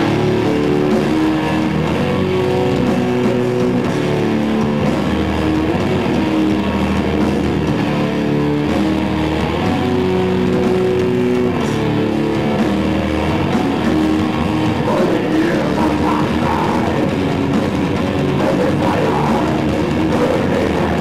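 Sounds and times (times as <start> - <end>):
bass guitar: 0.0 - 21.0
heavy electric guitars: 0.0 - 21.0.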